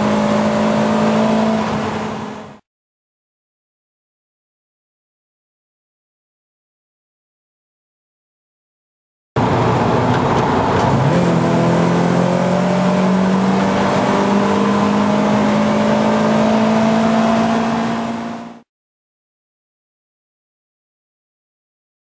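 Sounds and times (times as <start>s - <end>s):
car engine accelerating: 0.0s - 2.6s, 9.4s - 18.7s.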